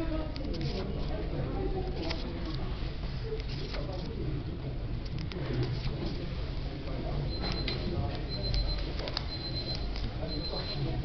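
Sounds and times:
book page turning: 0.3 - 1.2, 1.9 - 4.2.

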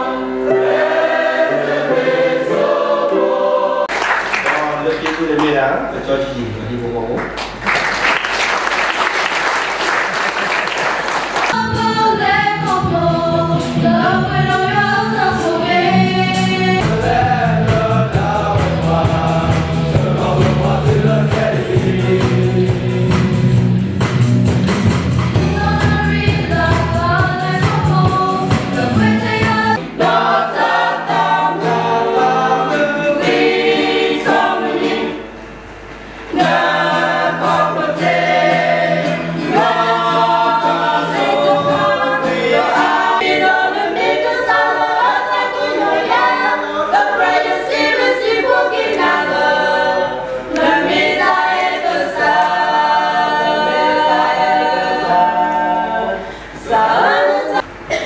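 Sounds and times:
group singing a hymn: 0.0 - 4.2, 11.2 - 23.6, 25.3 - 58.0.

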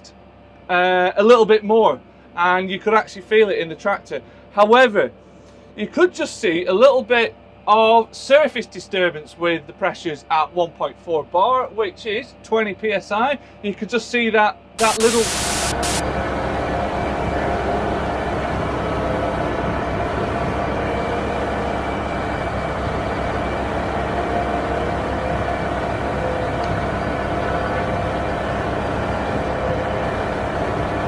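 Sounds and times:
steady held tones: 14.8 - 29.0
tractor engine rumbling under load: 15.0 - 31.0.

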